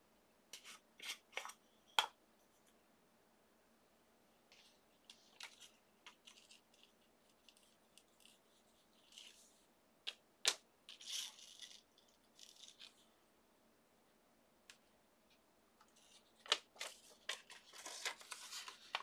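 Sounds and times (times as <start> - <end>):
envelope rustling: 16.0 - 19.0.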